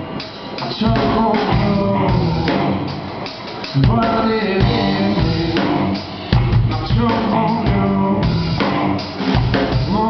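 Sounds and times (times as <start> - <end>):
live rock music: 0.0 - 10.0
hard drum hit: 0.8 - 10.0.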